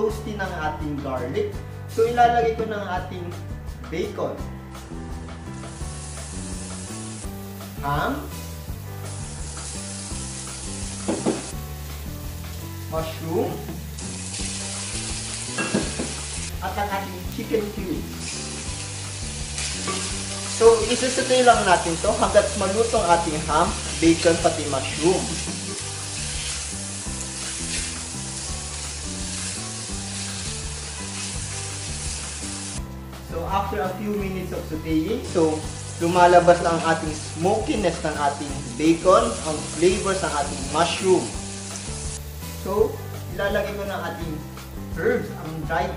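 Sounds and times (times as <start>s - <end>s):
background music: 0.0s - 45.9s
garlic and onion sizzling in a pan: 4.7s - 45.9s.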